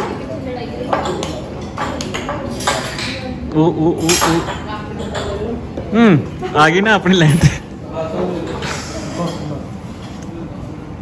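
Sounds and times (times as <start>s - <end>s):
cutlery and dishes clinking: 0.9s - 3.3s, 4.0s - 5.5s.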